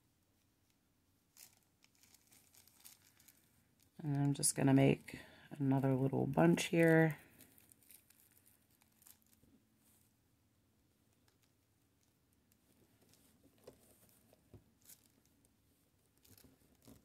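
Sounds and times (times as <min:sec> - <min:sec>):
plastic mesh crinkling: 0:00.6 - 0:10.2, 0:11.1 - 0:17.0.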